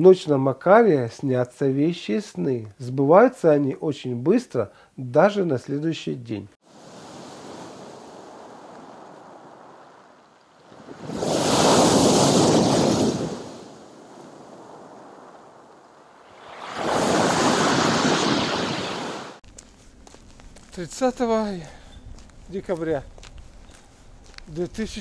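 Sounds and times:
sea waves breaking on pebbles: 0:06.7 - 0:19.4.

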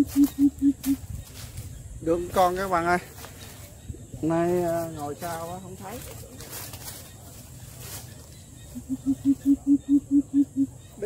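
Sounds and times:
bird deep hooting: 0:00.0 - 0:01.1, 0:08.6 - 0:11.0.

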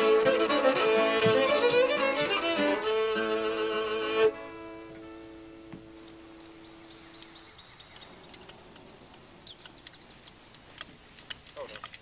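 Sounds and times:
fiddle note ringing: 0:00.0 - 0:06.6
faint bird chirps: 0:06.3 - 0:11.7.

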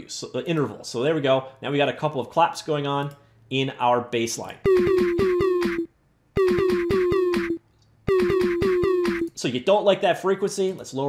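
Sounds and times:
distorted kick drum loop: 0:04.7 - 0:09.3.

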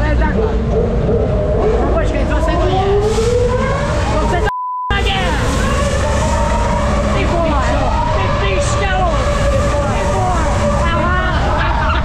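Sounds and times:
riders screaming and yelling: 0:00.5 - 0:12.0.

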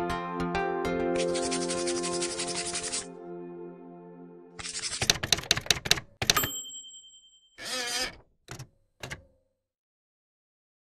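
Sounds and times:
typewriter key strikes: 0:05.0 - 0:06.6, 0:08.5 - 0:09.4
typewriter bell ring: 0:06.2 - 0:08.2.

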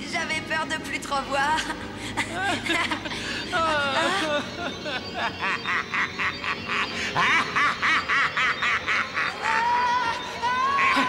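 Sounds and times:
cartoon character laughing: 0:02.3 - 0:11.0.

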